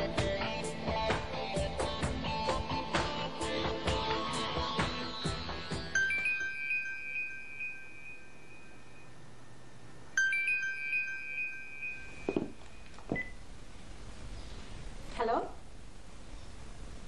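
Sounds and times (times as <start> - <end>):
phone ringtone chiming: 5.9 - 13.4
soft knocks: 12.3 - 13.3.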